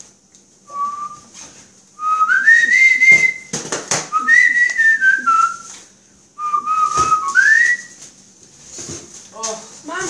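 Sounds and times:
person whistling a tune: 0:00.7 - 0:01.3, 0:02.0 - 0:03.5, 0:04.1 - 0:05.8, 0:06.4 - 0:08.0.

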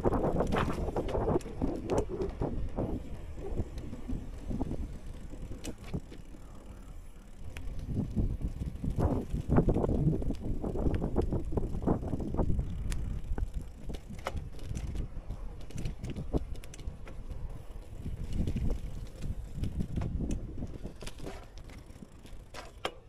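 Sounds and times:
bicycle tyres rumbling on paving: 0:00.0 - 0:23.0
bike clicking and rattling: 0:00.0 - 0:23.0.

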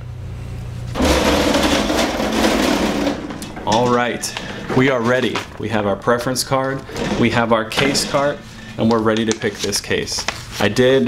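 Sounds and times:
low room hum: 0:00.0 - 0:11.0
metal cart rolling on hard floor: 0:01.0 - 0:09.2.

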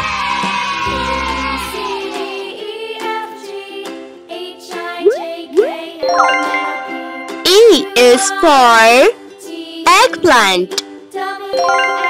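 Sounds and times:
cheerful background music: 0:00.4 - 0:12.0
bright ringing chime: 0:06.0 - 0:07.4.

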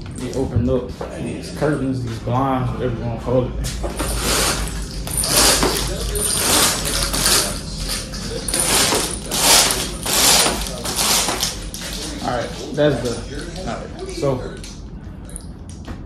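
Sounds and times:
roller shade mechanism rasping: 0:03.8 - 0:15.4.

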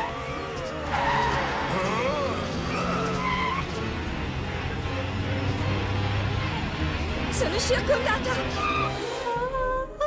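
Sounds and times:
tyre squeals: 0:00.0 - 0:03.8.

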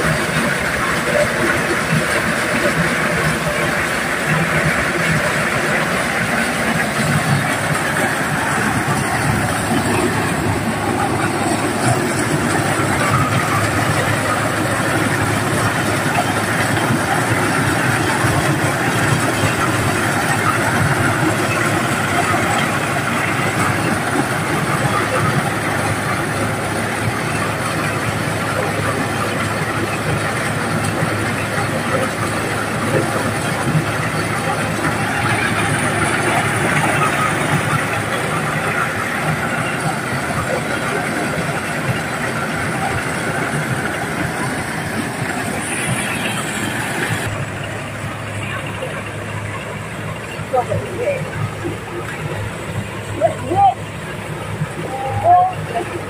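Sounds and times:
corn sheller running: 0:00.0 - 0:56.0.

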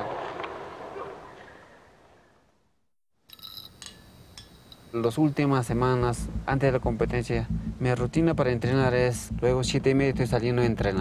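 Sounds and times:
skateboard wheels rolling on asphalt: 0:00.0 - 0:01.6
faint clinks: 0:03.3 - 0:05.1.

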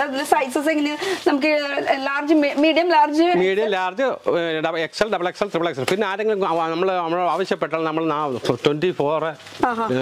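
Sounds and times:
man talking: 0:03.4 - 0:10.0.

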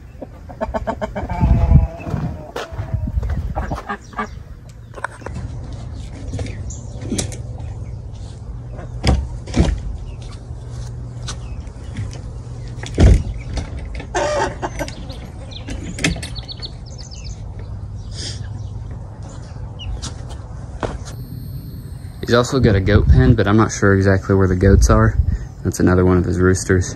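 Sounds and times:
low rumble: 0:21.2 - 0:25.4.

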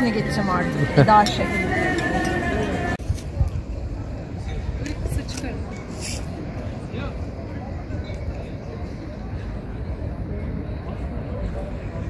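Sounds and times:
indistinct background talk: 0:00.0 - 0:12.0.

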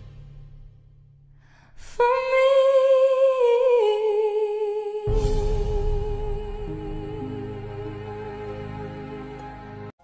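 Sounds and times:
woman singing long note: 0:02.0 - 0:09.8.

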